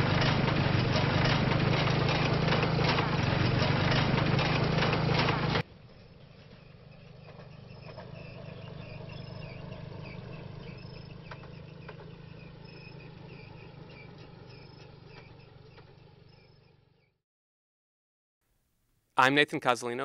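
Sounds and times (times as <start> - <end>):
insects chirping: 5.7 - 16.8.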